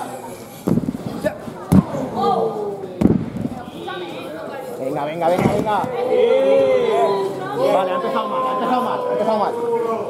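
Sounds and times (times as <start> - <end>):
hard thud on wrestling canvas: 3.0 - 3.5, 5.4 - 5.9
voices shouting: 5.4 - 10.0.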